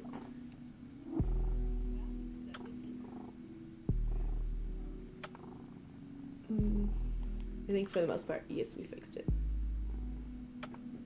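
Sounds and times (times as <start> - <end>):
cat purring: 0.0 - 8.2.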